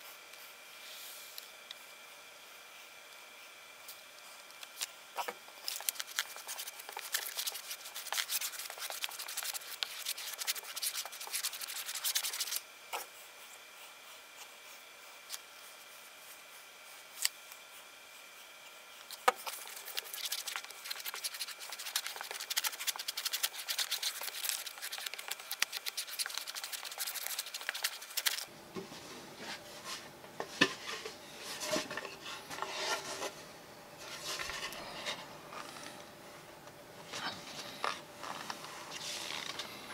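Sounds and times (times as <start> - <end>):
brush scrubbing glue on wood: 5.6 - 12.6, 19.1 - 28.4.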